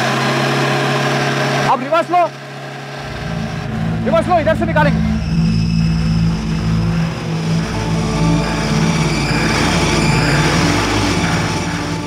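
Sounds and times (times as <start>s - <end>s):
car engine droning: 0.0s - 12.0s
background music: 3.0s - 12.0s.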